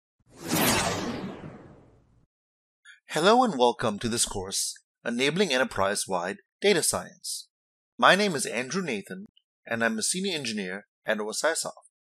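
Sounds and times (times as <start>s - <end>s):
whoosh sound effect: 0.3s - 2.1s.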